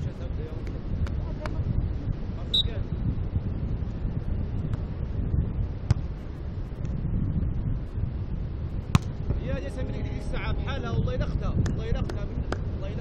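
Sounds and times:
wind buffeting microphone: 0:00.0 - 0:13.0
volleyball struck by hand: 0:08.9 - 0:09.2, 0:11.6 - 0:12.7.

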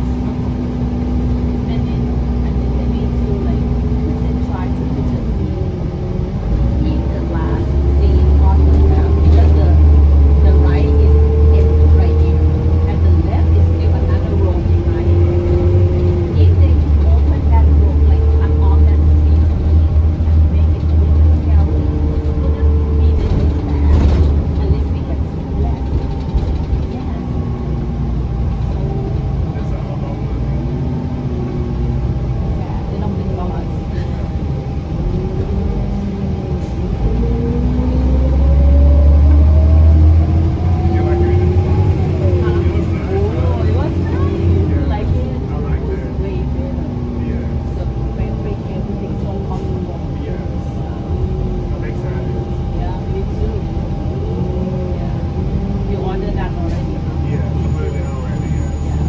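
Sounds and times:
bus engine rumbling: 0:00.0 - 0:59.0.

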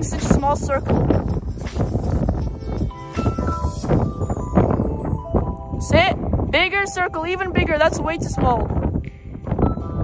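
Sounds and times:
background music with held notes: 0:00.0 - 0:10.0
wind buffeting microphone: 0:00.0 - 0:10.0.

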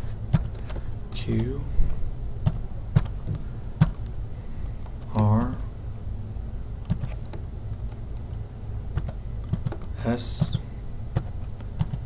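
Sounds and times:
keyboard keystrokes: 0:00.3 - 0:01.5, 0:02.5 - 0:03.2, 0:03.8 - 0:04.1, 0:06.8 - 0:08.4, 0:09.0 - 0:10.6, 0:11.2 - 0:12.0.

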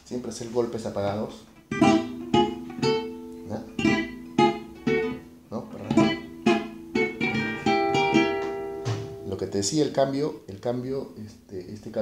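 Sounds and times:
acoustic guitar playing polka: 0:01.4 - 0:12.0.

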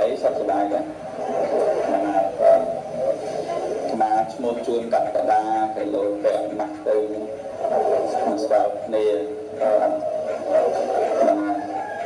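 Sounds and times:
person preaching through loudspeaker: 0:03.9 - 0:07.4, 0:08.0 - 0:11.7.

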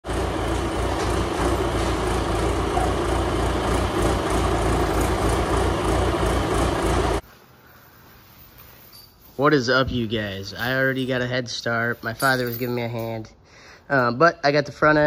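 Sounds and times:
tractor engine running: 0:00.0 - 0:07.2.

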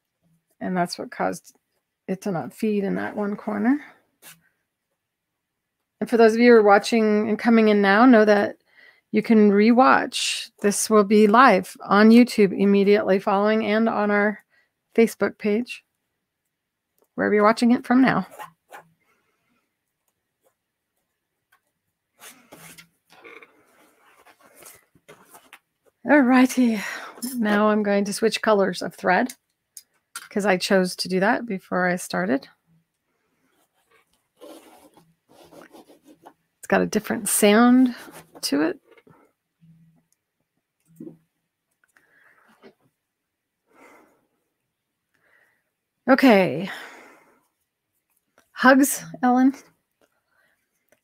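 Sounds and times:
thread spool rustling: 0:18.2 - 0:28.0, 0:33.3 - 0:40.0.

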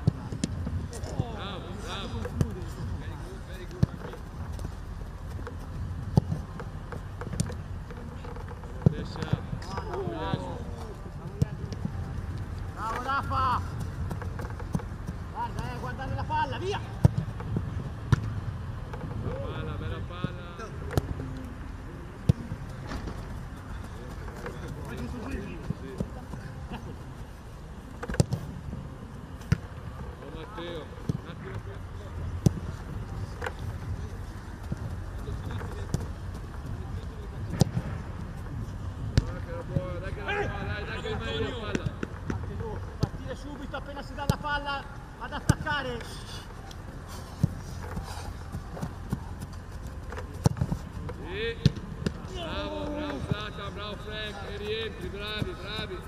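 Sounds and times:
football kick thuds: 0:50.2 - 0:52.3.

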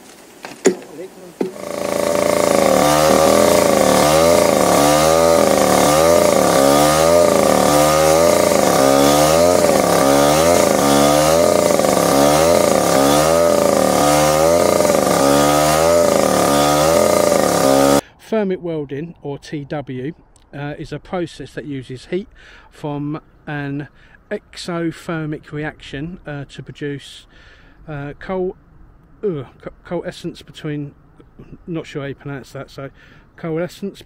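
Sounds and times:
rail saw cutting steel: 0:01.4 - 0:18.0.

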